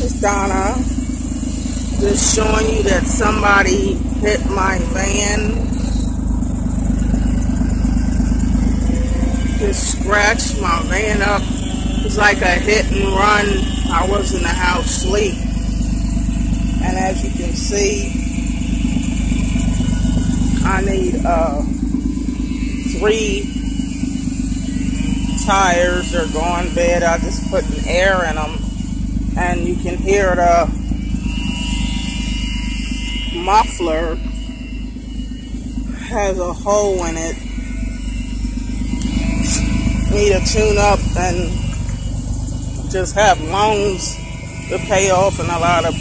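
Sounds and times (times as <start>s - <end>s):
engine idling with exhaust rumble: 0.0s - 46.0s.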